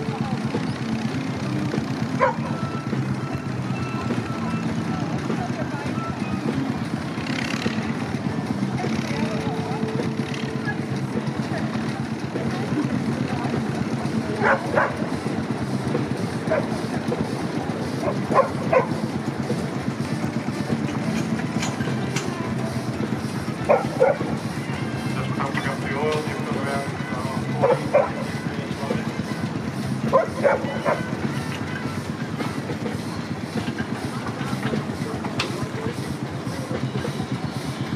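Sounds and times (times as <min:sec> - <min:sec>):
indistinct voices: 0:00.0 - 0:37.9
steam traction engines rumbling: 0:00.0 - 0:37.9.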